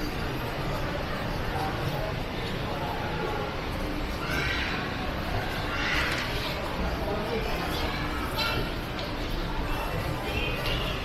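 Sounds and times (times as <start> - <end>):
shopping mall hubbub: 0.0 - 11.0.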